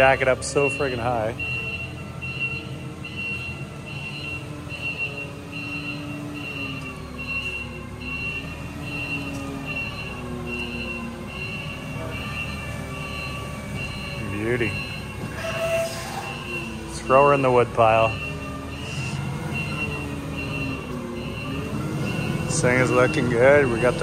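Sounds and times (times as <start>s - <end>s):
forklift engine humming: 0.0s - 24.0s
forklift warning beeper: 0.0s - 24.0s.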